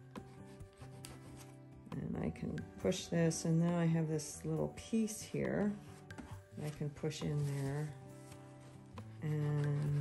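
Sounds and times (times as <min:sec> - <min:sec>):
soft background music: 0:00.0 - 0:10.0
spreader scraping pastel on paper: 0:00.3 - 0:01.6, 0:05.9 - 0:10.0.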